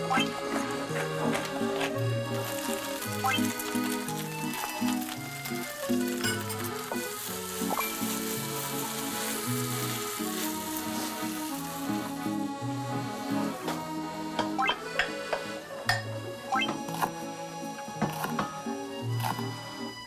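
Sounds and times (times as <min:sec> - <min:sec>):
background music: 0:00.0 - 0:20.0
rice sizzling in a frying pan: 0:02.3 - 0:12.4.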